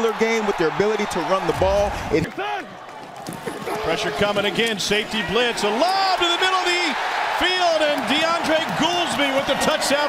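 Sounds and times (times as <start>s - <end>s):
crowd noise: 0.0s - 10.0s
man commentating: 3.6s - 10.0s.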